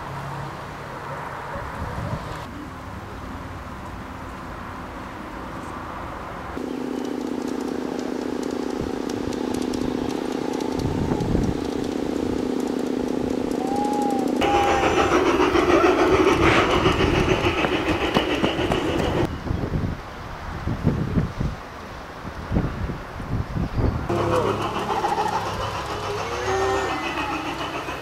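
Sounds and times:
rough train running sound: 0.0s - 20.0s, 22.6s - 28.0s
model train humming: 6.6s - 19.3s, 24.0s - 28.0s.

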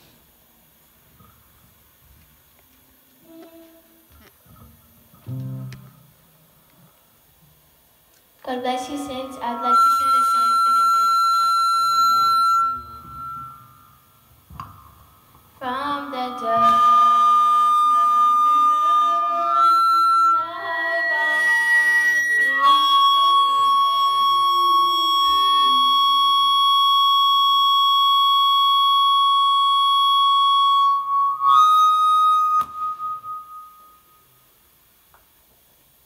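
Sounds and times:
girl singing into microphone: 8.4s - 10.5s, 15.6s - 26.3s
shrill high tone: 8.7s - 14.3s, 15.6s - 34.6s.

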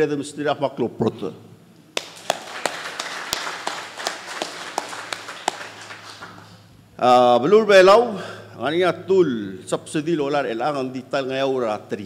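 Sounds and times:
loud single claps: 1.9s - 6.6s
group clapping: 1.9s - 6.7s.

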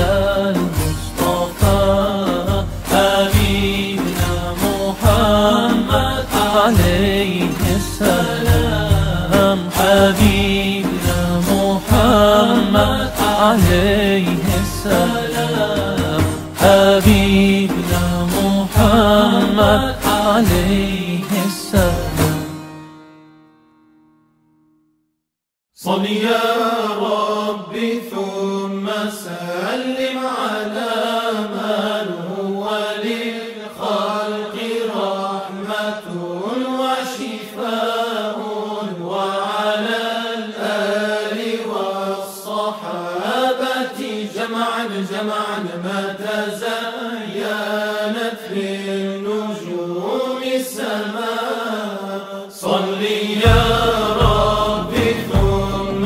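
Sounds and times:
man chanting: 0.0s - 22.4s, 52.6s - 56.0s.

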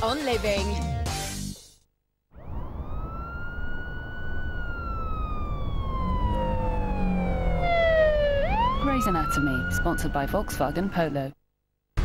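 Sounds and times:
emergency siren wailing: 2.3s - 11.3s
traffic rumble: 2.4s - 11.2s.

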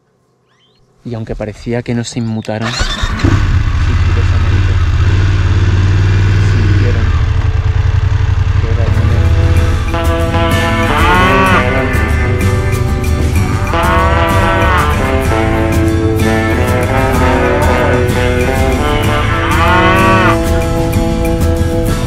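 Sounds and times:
motorcycle engine running: 2.8s - 22.0s
background guitar music: 8.7s - 22.0s.

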